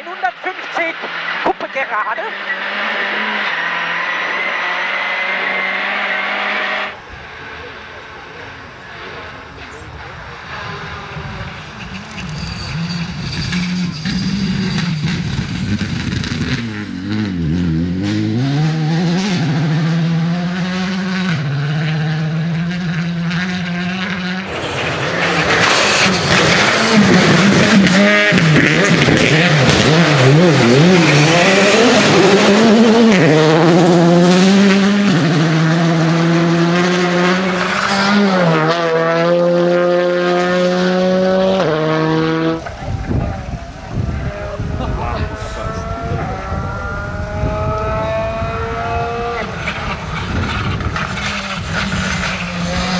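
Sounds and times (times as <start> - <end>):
rally car engine at full throttle: 0.0 - 52.9.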